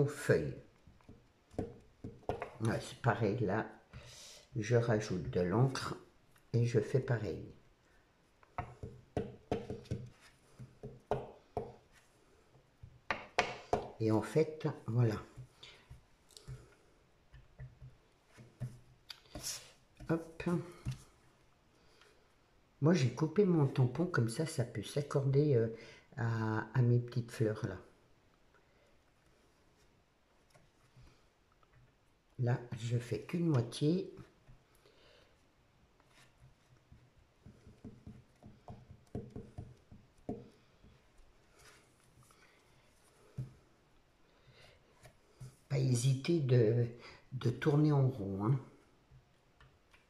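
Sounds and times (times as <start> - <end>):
stamp tapping and rubbing on paper: 1.0 - 2.5, 8.6 - 11.8, 36.4 - 40.5.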